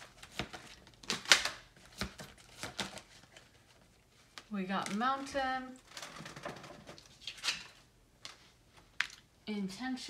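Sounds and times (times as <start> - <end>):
cards rustling and sliding: 0.0 - 5.0.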